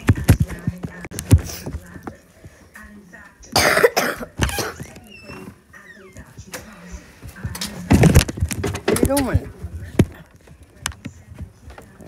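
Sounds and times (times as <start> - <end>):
person coughing: 3.6 - 4.9.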